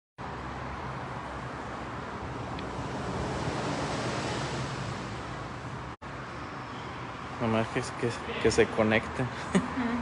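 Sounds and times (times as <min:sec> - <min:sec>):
steady rushing noise: 0:00.7 - 0:06.0.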